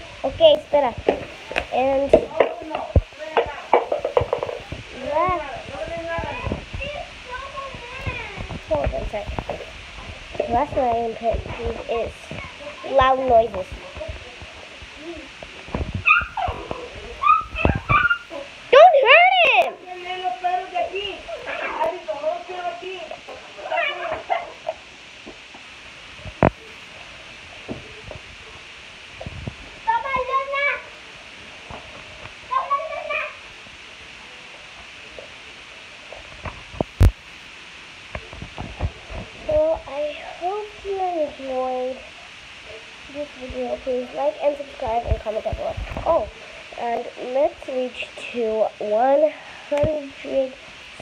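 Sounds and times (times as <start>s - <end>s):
high-pitched vocal outbursts: 16.0s - 21.9s, 23.6s - 24.6s.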